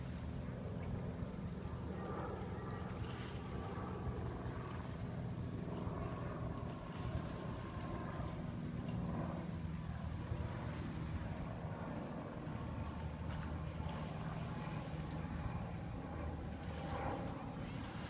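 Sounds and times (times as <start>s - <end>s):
low engine drone: 0.0s - 18.0s.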